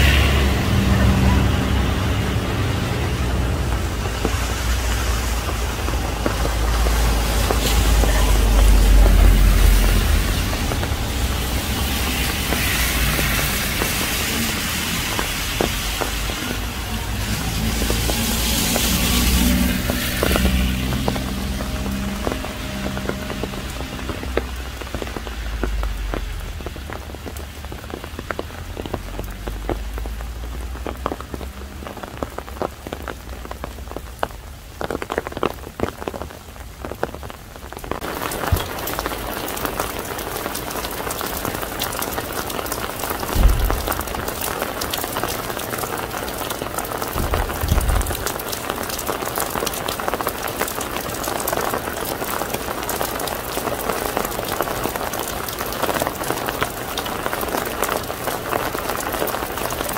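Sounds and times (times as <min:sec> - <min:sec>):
rain falling: 0:00.0 - 0:59.9
low thumps: 0:43.3 - 0:44.3, 0:47.2 - 0:48.3.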